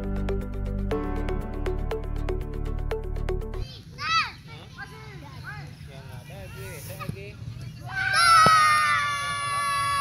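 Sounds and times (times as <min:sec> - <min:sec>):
children shouting: 0:07.8 - 0:10.0
loud high-pitched shout: 0:07.9 - 0:10.0.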